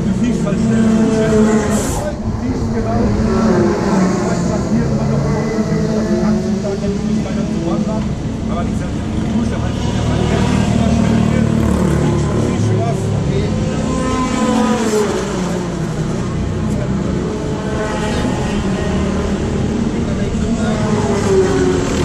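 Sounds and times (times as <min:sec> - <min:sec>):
people talking: 0:00.0 - 0:15.7, 0:19.8 - 0:21.3.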